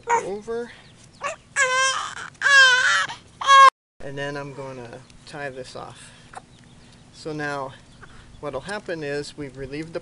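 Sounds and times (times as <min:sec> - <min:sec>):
loud animal calls: 0:01.2 - 0:03.7.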